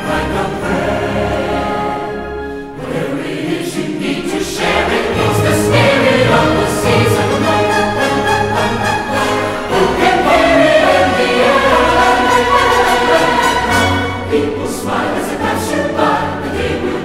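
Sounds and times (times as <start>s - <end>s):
choir singing: 0.0s - 17.0s
orchestral film music: 0.0s - 17.0s.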